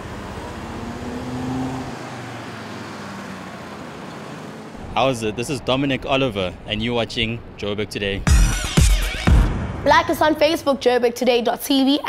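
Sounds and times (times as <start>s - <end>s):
city traffic rumble: 0.0s - 8.7s, 9.6s - 12.0s.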